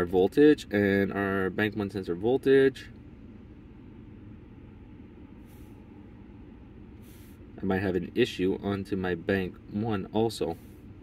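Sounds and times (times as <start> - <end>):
engine idling hum: 0.0 - 11.0
faint hiss: 4.7 - 7.6.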